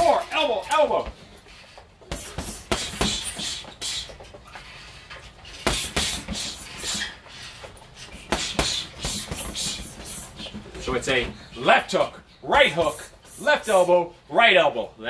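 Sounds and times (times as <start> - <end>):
punches thudding on heavy bag: 2.0 - 4.2, 5.5 - 7.2, 8.1 - 11.4.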